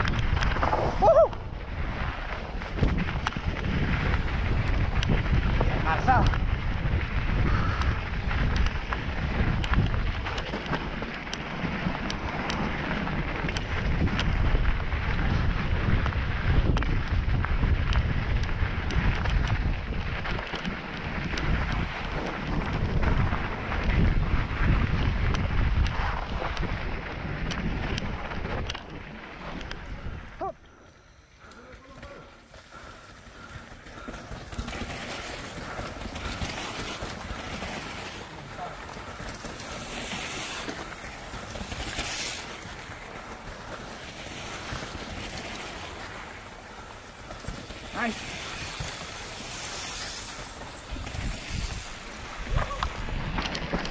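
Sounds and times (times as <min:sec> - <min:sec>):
wind rushing over microphone: 0:00.0 - 0:30.6, 0:32.7 - 0:53.9
mountain bike rattling on dirt trail: 0:00.0 - 0:53.9.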